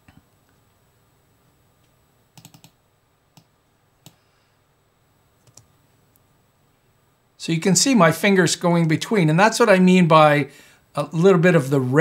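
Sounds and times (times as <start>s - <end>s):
computer mouse clicks: 1.8s - 2.8s, 3.4s - 4.2s, 5.4s - 5.7s.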